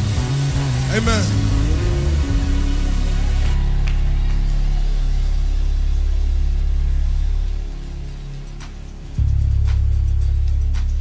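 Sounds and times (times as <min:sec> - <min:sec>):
deep sustained band chord: 0:00.0 - 0:10.7.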